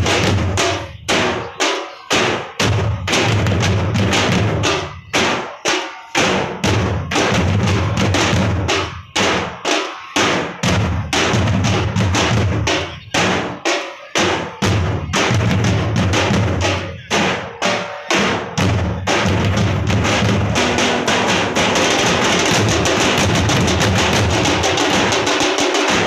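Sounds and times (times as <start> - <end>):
drummers beating drums in unison: 0.0 - 26.0.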